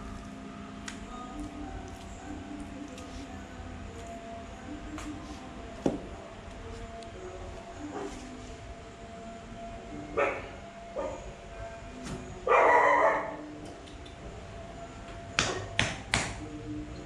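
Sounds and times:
dog barking: 10.2 - 11.2, 12.5 - 13.4.

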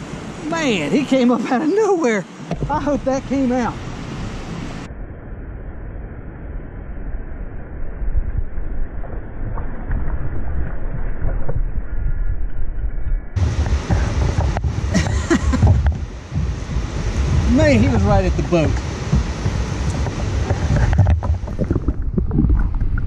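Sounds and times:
river water: 0.0 - 4.9, 13.4 - 23.0
muffled wind rumble on microphone: 2.4 - 23.0.

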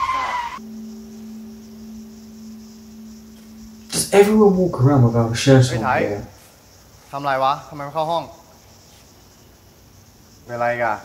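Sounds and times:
low held note of score: 0.6 - 5.9.

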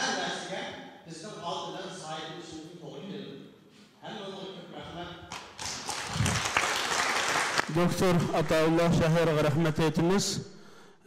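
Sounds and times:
audience applause: 5.3 - 8.7.

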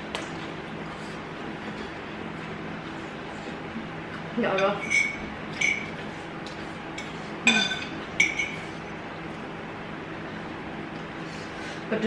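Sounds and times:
cutlery clinking against bowls: 4.5 - 6.0, 7.0 - 8.6.

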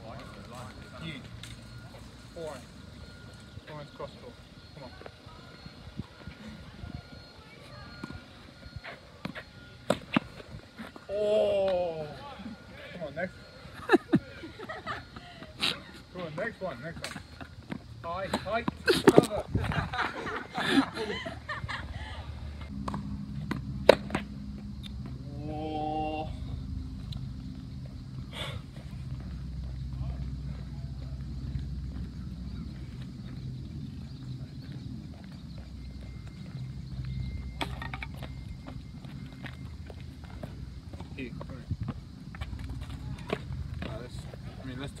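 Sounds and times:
steady low hum: 0.0 - 45.0
racket striking tennis ball: 22.8 - 24.3
man shouting: 25.3 - 26.4.

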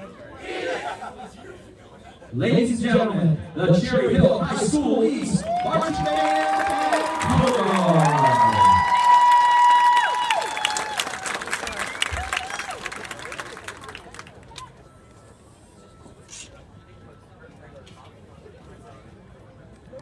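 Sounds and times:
spectators cheering and clapping: 5.2 - 14.8.

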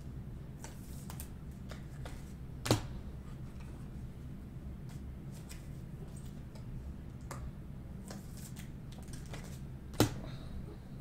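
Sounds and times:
cards clicking and rustling: 0.6 - 2.9, 4.8 - 7.4, 8.0 - 10.2.

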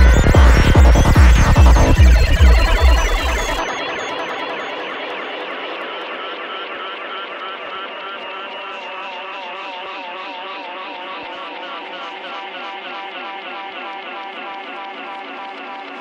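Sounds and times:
scattered electronic clicks: 0.0 - 9.6
warbling synth textures: 0.0 - 16.0.

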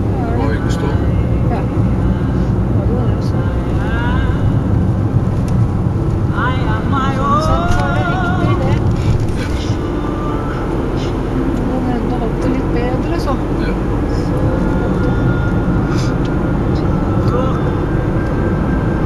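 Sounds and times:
car engine and tyre noise: 0.0 - 19.0.

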